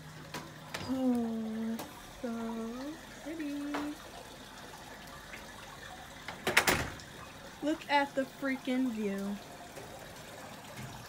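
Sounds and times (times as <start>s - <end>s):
water spilling into overflow channel: 0.0s - 11.0s.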